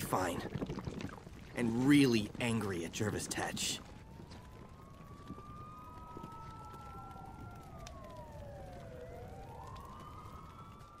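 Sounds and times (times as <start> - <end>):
emergency sirens wailing: 1.5 - 11.0.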